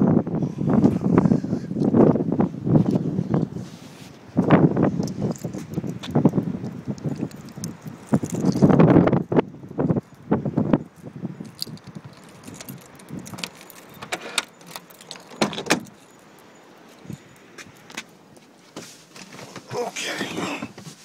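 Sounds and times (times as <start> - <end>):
keys jangling: 10.9 - 17.9
car door lock clicking: 12.5 - 16.0.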